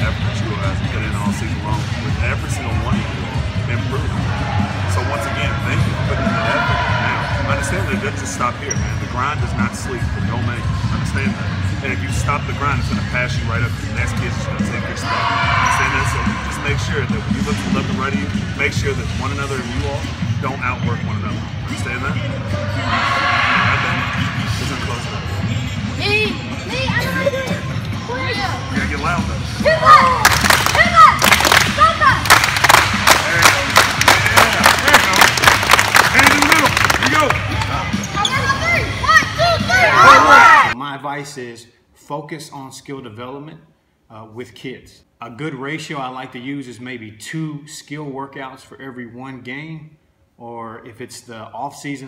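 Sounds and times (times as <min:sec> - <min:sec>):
voices in a hall: 0:00.0 - 0:40.8
fast hard clapping: 0:30.2 - 0:37.8
people shouting: 0:38.5 - 0:40.8.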